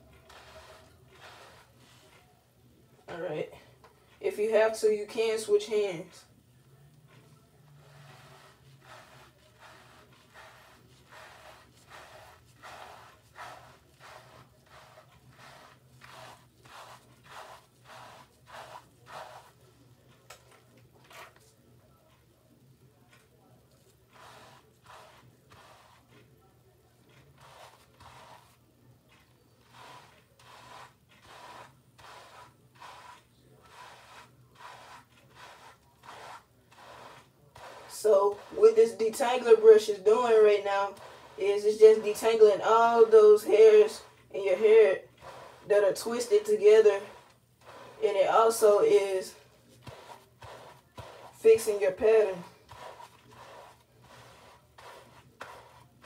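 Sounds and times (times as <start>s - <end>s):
brush scraping through hair: 0.0s - 2.3s, 7.1s - 21.5s, 23.1s - 26.3s, 27.0s - 56.0s.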